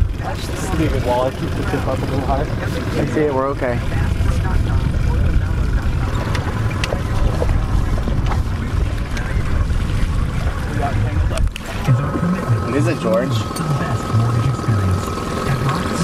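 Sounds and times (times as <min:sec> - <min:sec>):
wind buffeting microphone: 0:00.0 - 0:12.7.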